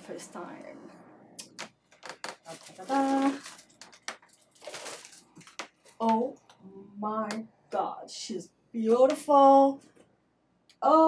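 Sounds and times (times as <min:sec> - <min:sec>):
foam packing rustling: 0:02.1 - 0:06.0.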